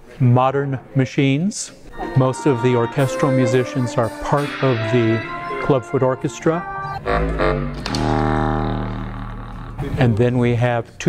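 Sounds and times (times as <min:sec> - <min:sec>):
contrabass clarinet low note: 0:01.9 - 0:10.2.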